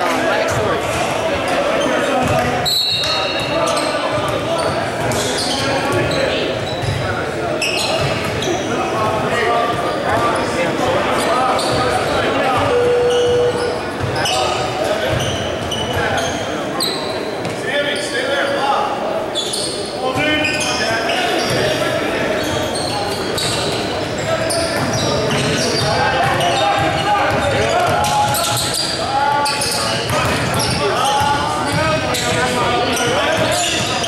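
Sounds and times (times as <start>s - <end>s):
people talking in a gym: 0.0s - 34.0s.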